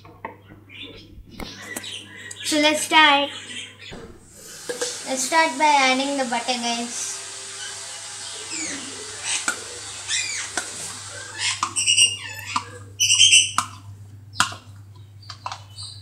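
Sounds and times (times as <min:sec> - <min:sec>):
birds calling and chirping: 0:00.0 - 0:16.0
steady low hum: 0:00.0 - 0:16.0
loud high squawks: 0:06.3 - 0:13.8.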